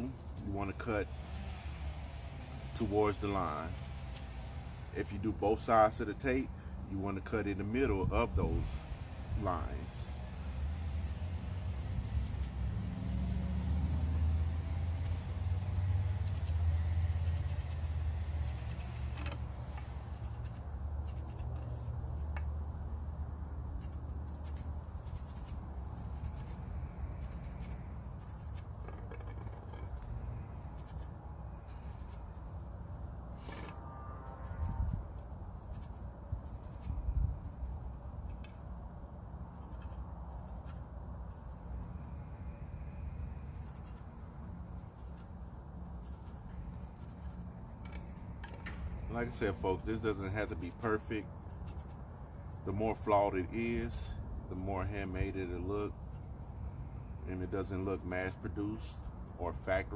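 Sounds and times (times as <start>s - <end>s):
pencil scratching on wood: 14.8s - 22.5s, 39.5s - 41.5s, 46.0s - 48.0s, 49.5s - 52.0s.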